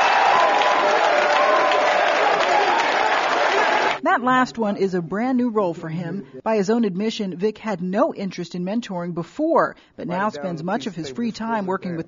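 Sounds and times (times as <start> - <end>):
audience applauding: 0.0 - 4.0.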